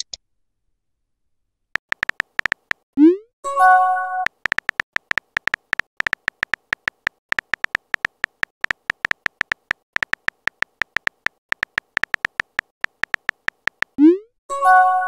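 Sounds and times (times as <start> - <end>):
phone keyboard clicks: 1.8 - 2.9, 4.3 - 14.0.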